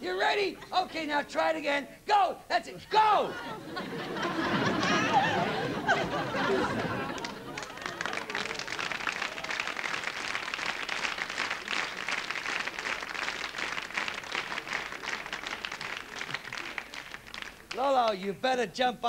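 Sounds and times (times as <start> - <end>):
audience applauding: 4.0 - 18.2.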